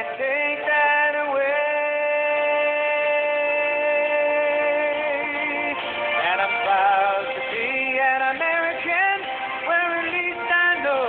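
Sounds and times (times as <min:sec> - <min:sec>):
country backing music: 0:00.0 - 0:11.0.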